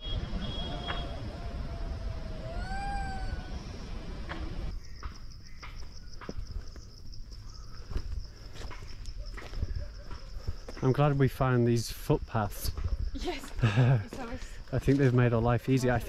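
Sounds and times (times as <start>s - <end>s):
low wind rumble: 0.0s - 8.6s
cicadas and crickets droning: 0.0s - 16.0s
animal call rising and falling: 0.6s - 4.7s
footsteps crunching on stony path: 5.5s - 11.4s, 12.7s - 16.0s.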